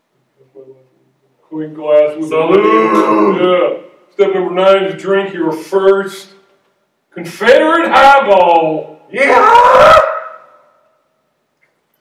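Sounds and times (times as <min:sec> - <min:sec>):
man's drawn-out exclamation: 0:02.4 - 0:03.8, 0:07.8 - 0:10.3.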